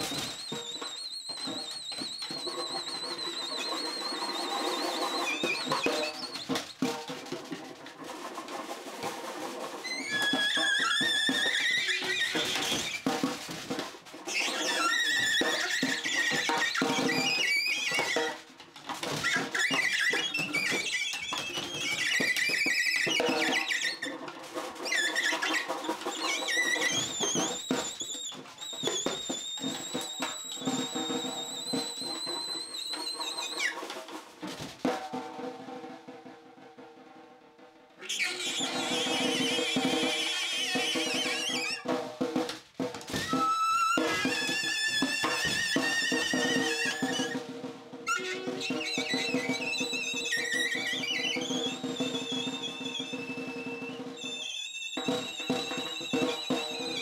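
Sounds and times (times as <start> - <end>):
saxophone squealing high notes: 0.0 - 6.8, 9.9 - 13.1, 14.3 - 18.4, 19.2 - 24.2, 24.8 - 33.8, 38.0 - 41.9, 43.1 - 47.4, 48.1 - 57.0.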